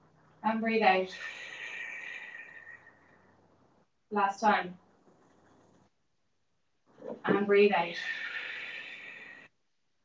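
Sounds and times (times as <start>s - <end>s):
person breathing out: 8.0s - 9.5s.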